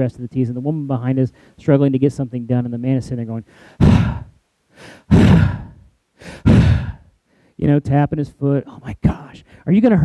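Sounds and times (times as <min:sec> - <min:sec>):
man sighing: 0:03.5 - 0:07.1.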